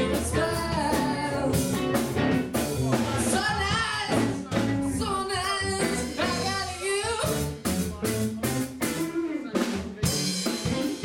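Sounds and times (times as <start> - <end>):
person singing: 0.0 - 2.2, 3.0 - 7.8
bass guitar: 0.0 - 11.0
drums: 0.0 - 11.0
electric guitar: 0.0 - 11.0.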